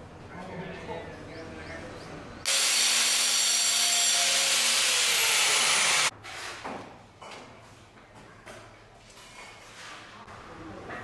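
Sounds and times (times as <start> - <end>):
power tool running: 2.5 - 6.1.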